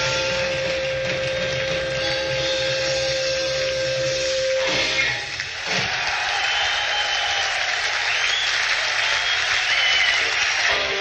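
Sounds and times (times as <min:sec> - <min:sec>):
electric guitar sustained note: 0:00.0 - 0:05.2
live rock band: 0:00.0 - 0:05.9, 0:09.6 - 0:11.0
crowd noise: 0:04.6 - 0:11.0.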